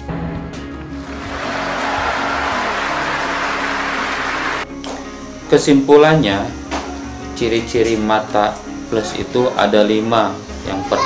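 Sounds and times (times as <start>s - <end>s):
background music: 0.0s - 11.0s
audience applause: 1.0s - 4.6s.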